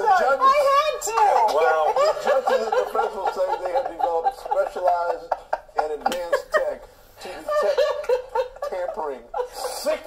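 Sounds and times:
people laughing: 0:01.1 - 0:10.0.

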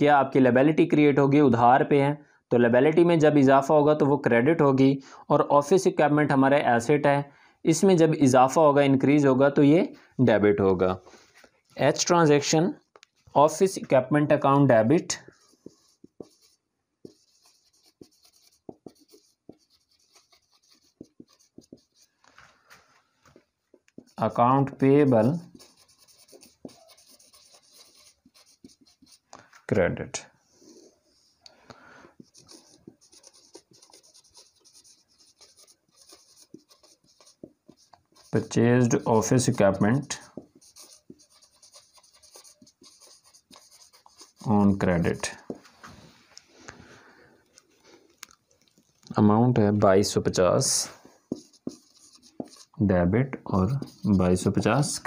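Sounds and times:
marker squeaking on whiteboard: 0:14.8 - 0:29.6, 0:32.1 - 0:45.9, 0:50.6 - 0:55.0.

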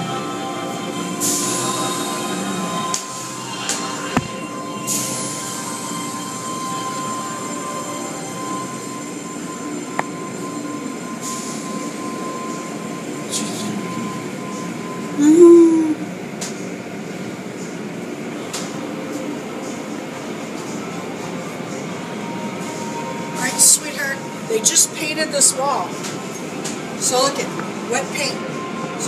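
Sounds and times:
car wash machinery humming: 0:00.0 - 0:29.0.

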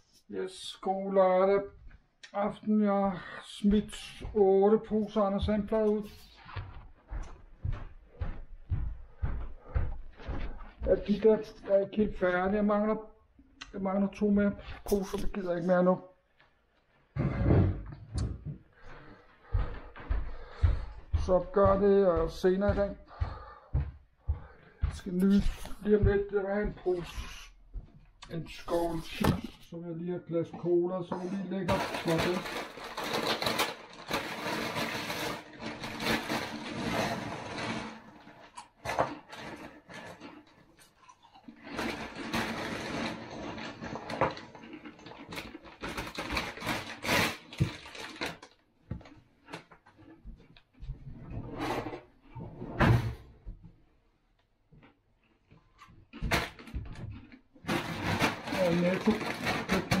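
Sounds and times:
plastic chip bag crinkling: 0:31.6 - 0:48.6, 0:56.5 - 1:00.0
chips rattling into a bowl: 0:31.7 - 0:36.6.

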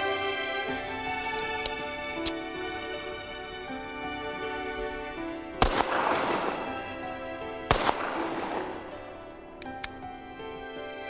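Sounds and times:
background music: 0:00.0 - 0:11.0
pistol shot with echo: 0:05.6 - 0:07.0, 0:07.7 - 0:09.2.

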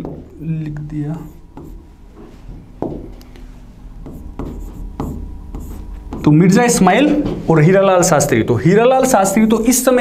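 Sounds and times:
marker pen writing on whiteboard: 0:01.1 - 0:03.1, 0:04.0 - 0:06.8.

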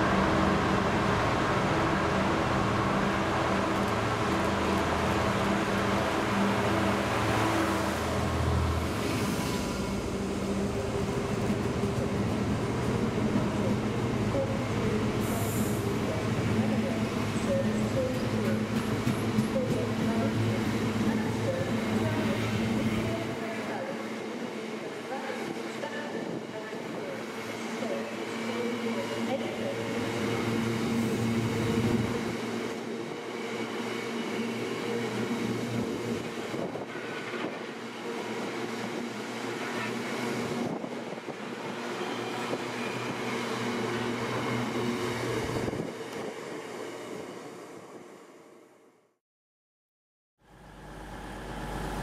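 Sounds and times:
freight train wheels rumbling: 0:00.0 - 0:46.7.

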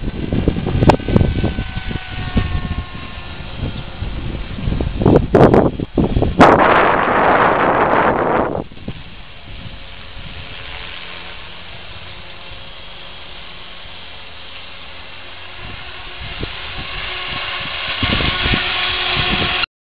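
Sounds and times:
model helicopter drone: 0:00.0 - 0:19.7.

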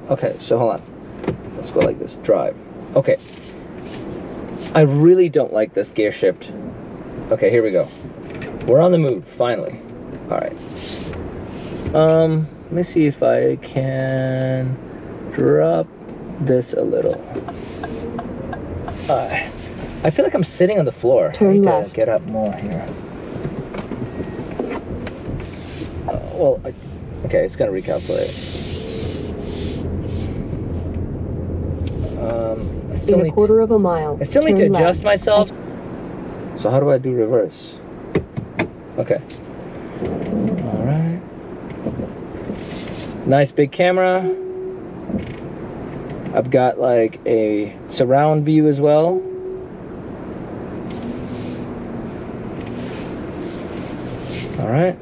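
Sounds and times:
car cabin hum: 0:00.1 - 0:55.0
car cabin hiss: 0:25.3 - 0:26.1, 0:27.8 - 0:30.5, 0:42.4 - 0:43.2, 0:50.9 - 0:51.8, 0:52.6 - 0:54.6.

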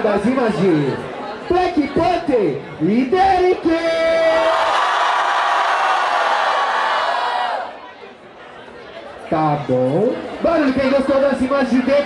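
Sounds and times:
crowd cheering and screaming: 0:04.2 - 0:07.8.

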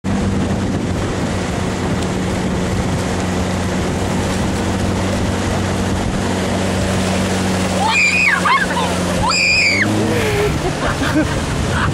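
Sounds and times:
motorboat engine droning: 0:00.0 - 0:11.9
water rushing along hull: 0:00.0 - 0:11.9
wind: 0:00.0 - 0:11.9.

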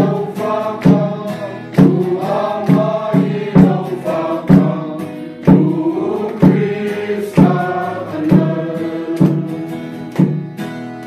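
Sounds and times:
group singing a hymn: 0:00.0 - 0:10.4
hand drum beat: 0:00.0 - 0:10.7.

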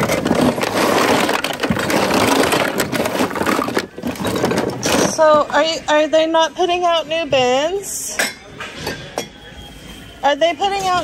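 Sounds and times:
store background noise: 0:00.0 - 0:11.0.

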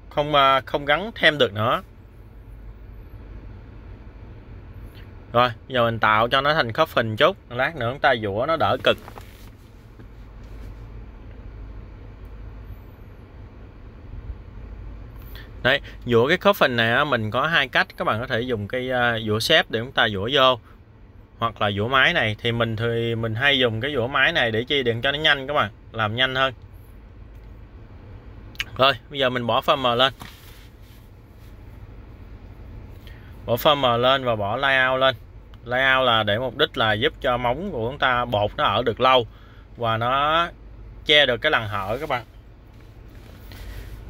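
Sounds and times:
background hum and hiss: 0:00.0 - 0:44.0.

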